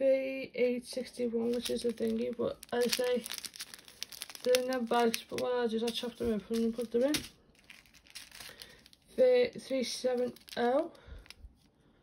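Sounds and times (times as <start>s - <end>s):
person speaking: 0.0s - 7.4s, 8.2s - 11.4s
plastic bags crinkling: 1.0s - 11.7s.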